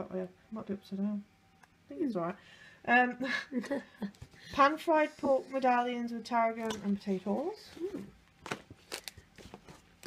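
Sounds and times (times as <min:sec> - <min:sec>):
paper cards rustling: 0:07.1 - 0:10.0.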